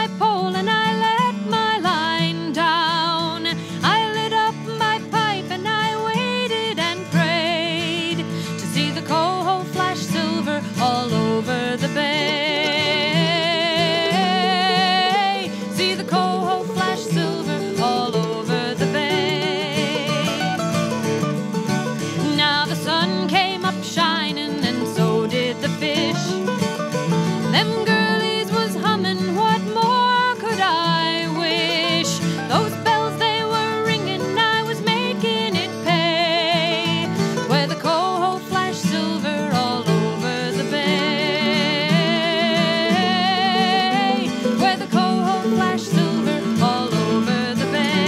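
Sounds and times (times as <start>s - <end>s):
plucked guitars: 0.0s - 48.0s
wavering melody line: 12.6s - 20.6s.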